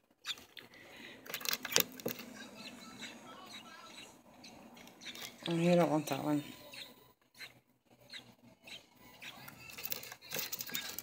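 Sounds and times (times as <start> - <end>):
baby bird cheeping: 1.3 - 11.0.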